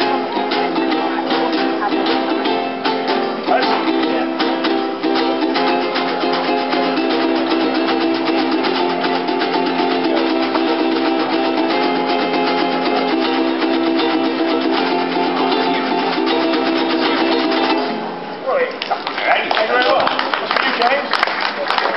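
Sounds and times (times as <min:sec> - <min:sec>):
acoustic guitars strummed: 0:00.0 - 0:18.4
voices: 0:00.0 - 0:21.9.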